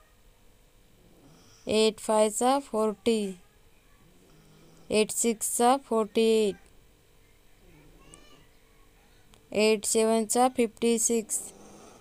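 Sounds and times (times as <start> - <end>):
woman reciting numbers: 1.6 - 4.0, 4.8 - 6.7, 8.8 - 11.7.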